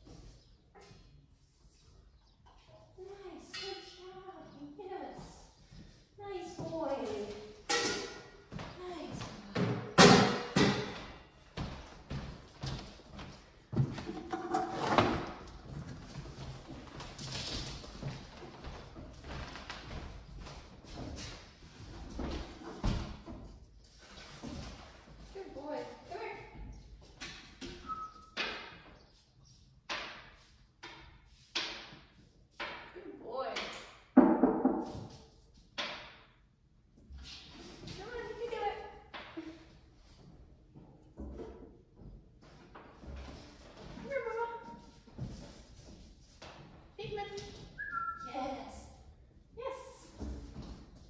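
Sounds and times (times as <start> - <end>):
woman speaking softly: 3.0 - 5.5, 6.2 - 7.4, 8.8 - 9.5, 25.3 - 26.6, 48.2 - 48.9, 49.6 - 50.1
sharp knocks echoing in a room: 7.6 - 8.6, 9.5 - 11.2, 29.9 - 33.0, 33.6 - 35.2, 35.8 - 36.4.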